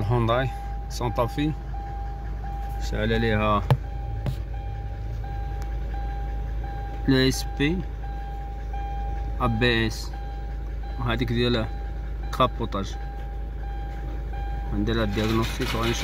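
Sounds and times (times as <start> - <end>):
high warning beep: 0.0 - 15.4
car engine idling: 0.0 - 16.0.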